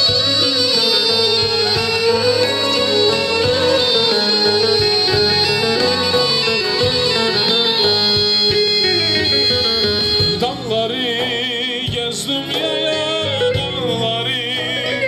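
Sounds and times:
drone note: 0:00.0 - 0:10.4
bowed fiddle folk melody: 0:00.0 - 0:15.0
low beat: 0:00.0 - 0:15.0.

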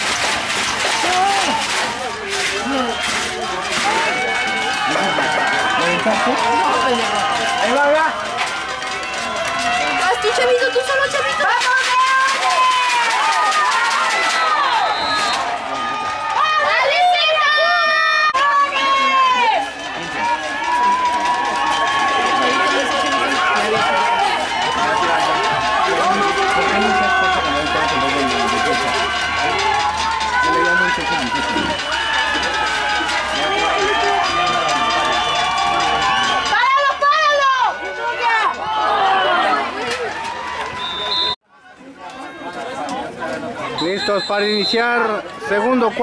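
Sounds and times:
crowd shouting and cheering: 0:00.0 - 0:46.0.

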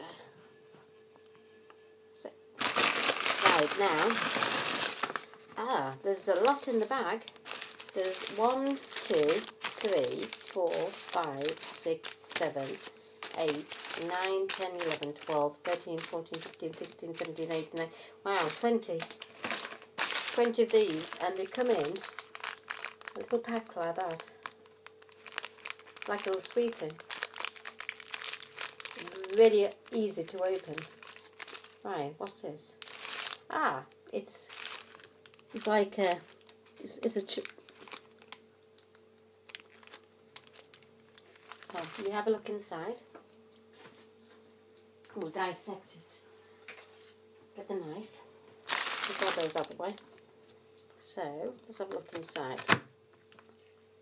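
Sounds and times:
faint steady hum: 0:00.0 - 0:54.0
plastic wrappers crinkling: 0:02.6 - 0:05.6, 0:06.2 - 0:43.4, 0:48.6 - 0:53.9
person talking: 0:03.4 - 0:04.3, 0:05.6 - 0:07.3, 0:07.9 - 0:19.1, 0:20.3 - 0:22.1, 0:23.1 - 0:24.4, 0:26.1 - 0:27.0, 0:29.0 - 0:31.0, 0:31.8 - 0:32.8, 0:33.5 - 0:34.5, 0:35.5 - 0:37.5, 0:41.7 - 0:43.1, 0:45.1 - 0:46.2, 0:47.6 - 0:48.2, 0:49.0 - 0:50.1, 0:51.0 - 0:52.8.

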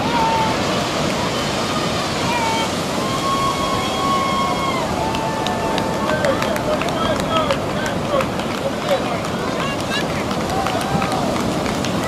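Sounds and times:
surf: 0:00.0 - 0:12.0
wind noise: 0:00.0 - 0:12.0
person cheering woo: 0:02.3 - 0:06.1.

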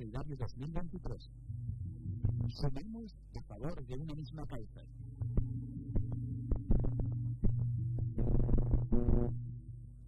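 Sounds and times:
low electronic drone: 0:01.0 - 0:10.0
deep pulsing thumps: 0:01.4 - 0:02.8, 0:05.0 - 0:09.7.

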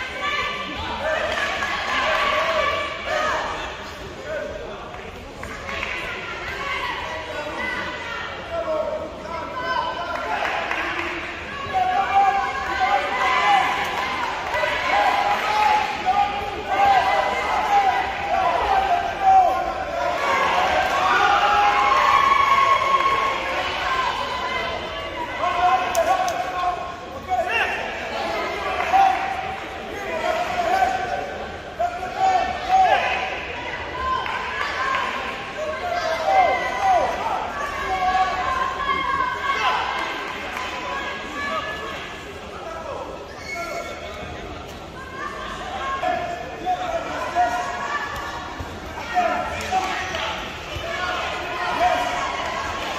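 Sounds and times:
people shouting: 0:05.9 - 0:42.0, 0:45.0 - 0:52.9.

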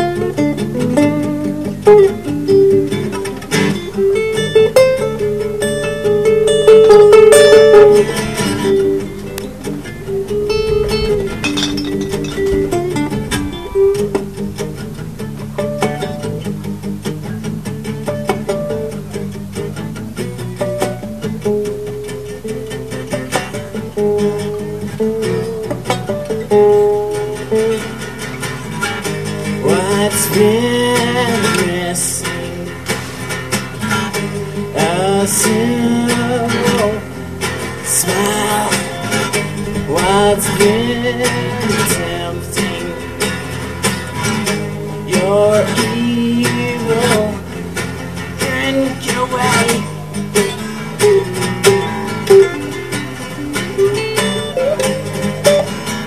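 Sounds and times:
lead acoustic guitar: 0:00.0 - 0:56.0
rhythm guitar strumming: 0:00.0 - 0:56.0.

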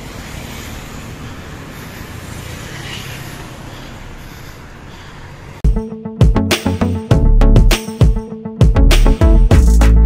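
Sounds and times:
vehicle road noise: 0:00.0 - 0:05.7.

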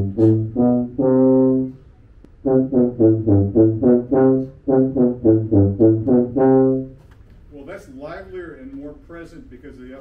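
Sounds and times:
tuba playing short low notes: 0:00.0 - 0:07.0.

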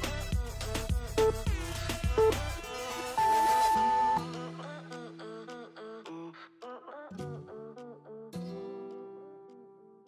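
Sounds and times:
melodic background music: 0:00.0 - 0:05.2
electronic timer beep: 0:01.2 - 0:01.4, 0:02.2 - 0:02.4, 0:03.2 - 0:04.2.

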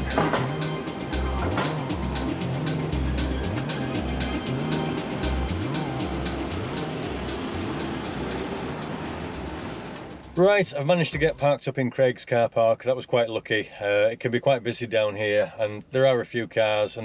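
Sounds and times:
background music with beat: 0:00.0 - 0:11.4.

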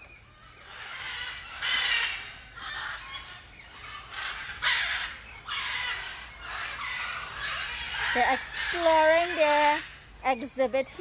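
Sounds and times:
macaws squawking: 0:00.4 - 0:11.0.

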